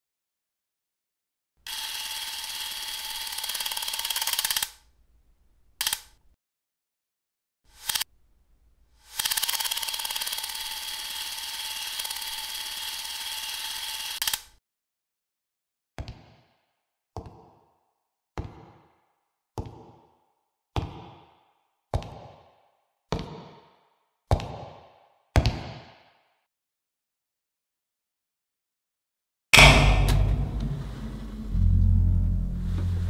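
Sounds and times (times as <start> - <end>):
electric hair clippers buzzing: 1.7 - 3.6, 10.2 - 14.2.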